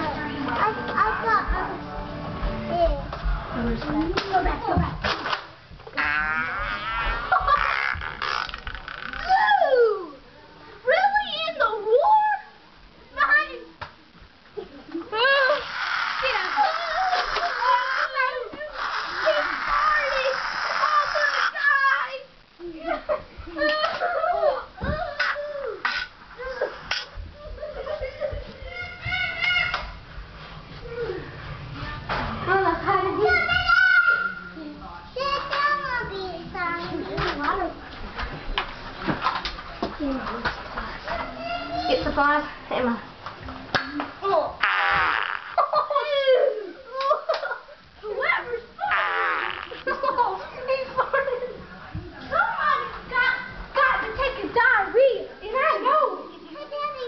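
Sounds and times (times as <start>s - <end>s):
child making buzzing fart-like noise: 5.9s - 9.3s, 15.5s - 21.6s, 44.6s - 45.7s, 48.9s - 50.0s
children shouting and squealing: 5.9s - 10.2s, 15.1s - 22.3s, 23.6s - 30.0s, 33.2s - 34.6s, 52.3s - 54.4s.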